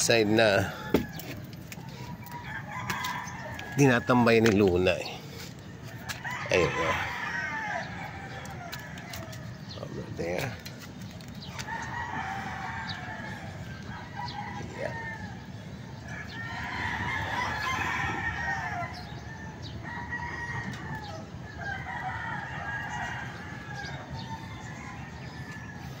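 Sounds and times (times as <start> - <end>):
roosters crowing: 0.0 - 26.0.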